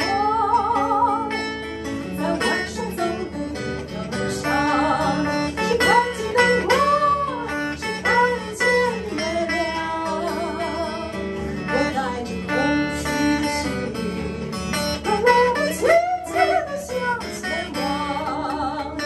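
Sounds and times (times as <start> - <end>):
bluesy acoustic guitar: 0.0 - 19.0
woman singing with vibrato: 0.0 - 19.0.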